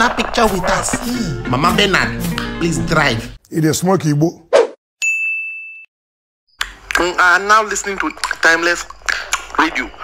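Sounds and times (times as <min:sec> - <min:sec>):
bright chime ding: 0:05.0 - 0:05.9.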